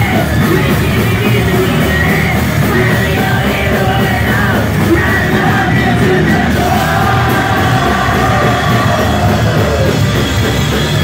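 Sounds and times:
punk rock band playing: 0.0s - 11.0s
yelled vocals: 0.0s - 11.0s.

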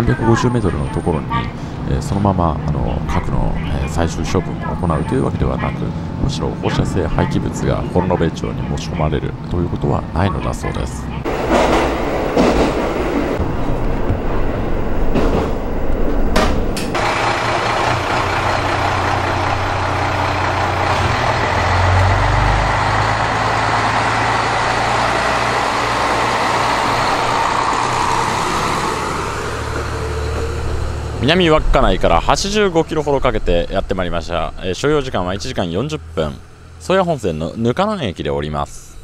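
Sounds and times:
diesel engine running: 0.0s - 39.0s
train clattering along track: 11.2s - 35.6s.

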